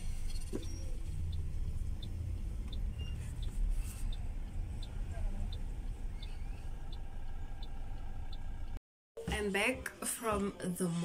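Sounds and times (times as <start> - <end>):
car engine and road noise: 0.0 - 8.8
faint even ticking: 0.8 - 8.8.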